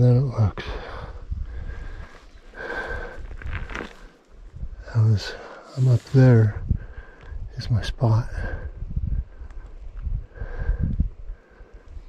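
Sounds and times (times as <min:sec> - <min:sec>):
heavy breathing: 0:00.6 - 0:04.2, 0:05.1 - 0:07.4, 0:08.4 - 0:12.0
footsteps on loose gravel: 0:01.8 - 0:04.2.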